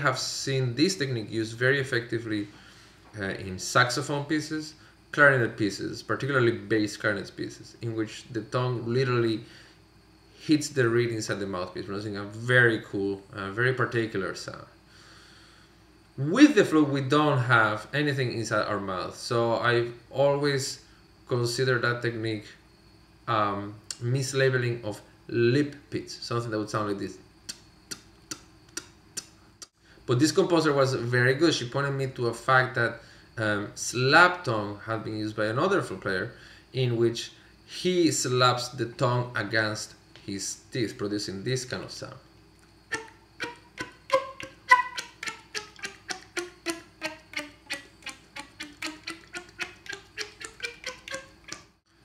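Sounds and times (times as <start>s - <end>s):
flute lip pizzicato pops: 42.9s - 51.6s.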